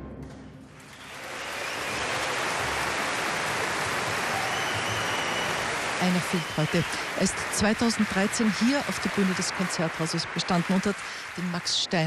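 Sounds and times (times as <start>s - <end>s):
audience applause: 0.7s - 12.0s.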